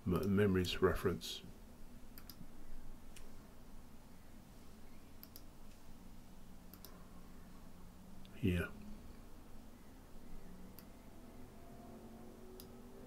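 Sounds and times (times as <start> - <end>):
faint low hum: 0.0 - 13.0
faint computer mouse clicks: 2.2 - 2.5, 5.2 - 5.5, 6.7 - 7.0.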